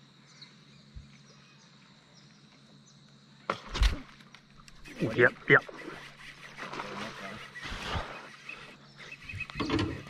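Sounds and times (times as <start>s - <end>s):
river ambience: 0.0s - 10.0s
faint bird chirps: 4.8s - 10.0s.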